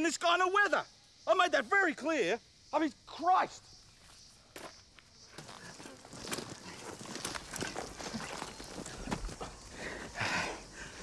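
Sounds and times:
footsteps on dry leaves: 0:05.4 - 0:09.4.

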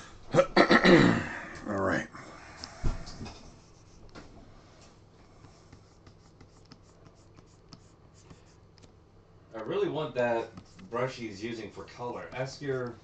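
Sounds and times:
stylus tapping on drawing tablet: 0:05.4 - 0:08.4.

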